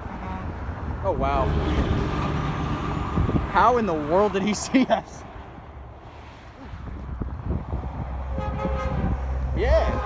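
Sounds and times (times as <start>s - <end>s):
truck rumbling: 0.0s - 10.0s
truck air horn chord: 8.3s - 9.2s.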